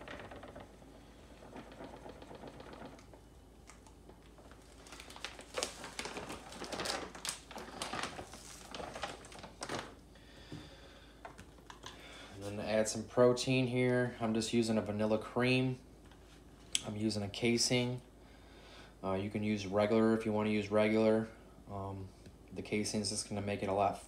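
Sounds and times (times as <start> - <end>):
plastic pouch crinkling: 1.4 - 10.1.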